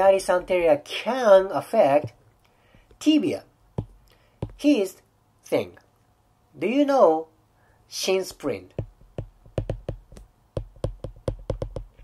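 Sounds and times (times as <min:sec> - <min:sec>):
stylus tapping on glass screen: 0:03.8 - 0:04.6, 0:08.8 - 0:12.0.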